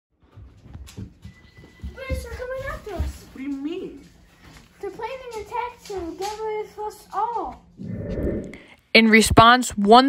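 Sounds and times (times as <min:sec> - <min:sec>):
footsteps on wooden floor: 0:00.3 - 0:03.6.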